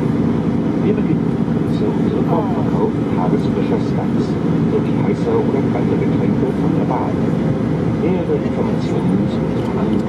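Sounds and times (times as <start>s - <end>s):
aircraft cabin engine rush: 0.0s - 10.0s
public-address voice: 0.8s - 7.4s, 8.0s - 10.0s.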